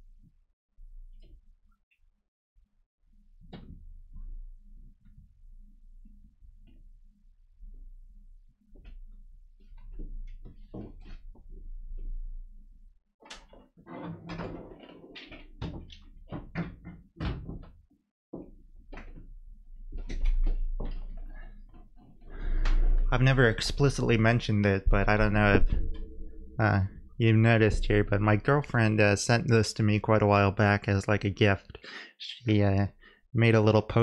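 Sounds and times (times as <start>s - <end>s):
low electrical hum: 3.2s - 13.0s, 18.5s - 34.0s.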